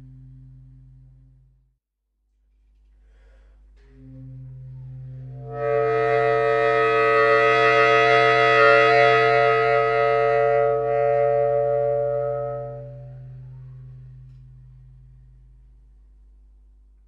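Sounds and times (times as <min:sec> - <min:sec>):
baritone saxophone multiphonic chord: 0:03.8 - 0:15.8.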